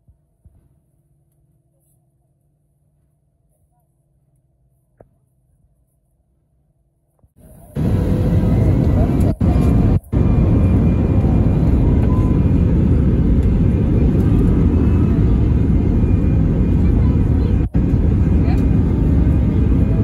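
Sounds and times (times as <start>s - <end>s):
jet engine noise in cabin: 7.2s - 20.0s.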